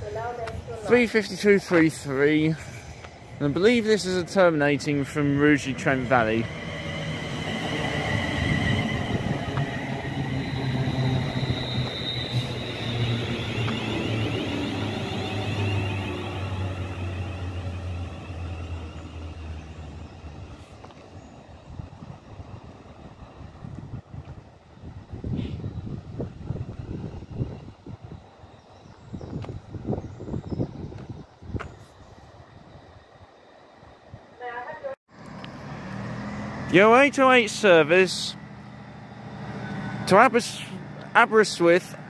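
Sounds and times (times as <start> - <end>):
electric train motors whining: 2.8 - 21.1, 35.2 - 42.0.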